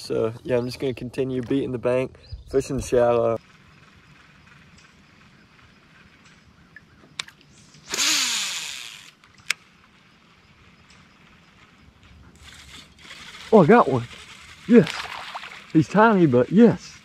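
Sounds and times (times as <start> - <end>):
fishing line whirring off spool: 7.2 - 9.6, 11.3 - 16.4.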